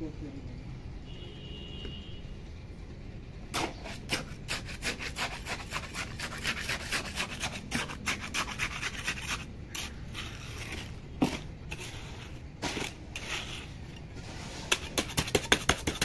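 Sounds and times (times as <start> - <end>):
trowel scraping wet mortar: 3.5 - 16.0.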